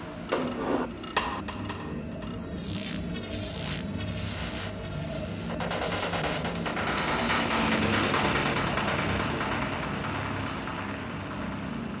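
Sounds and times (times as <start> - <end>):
psytrance electronic music: 1.2 - 10.7.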